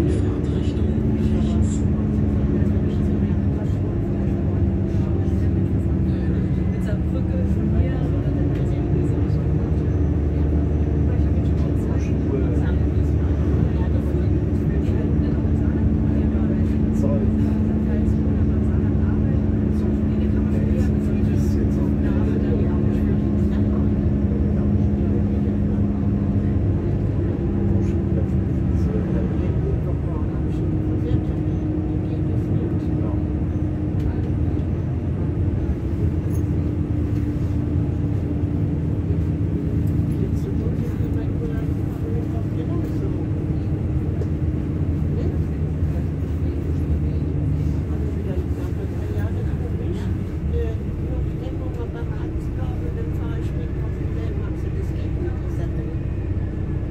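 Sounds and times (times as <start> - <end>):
train rumbling: 0.0 - 56.9.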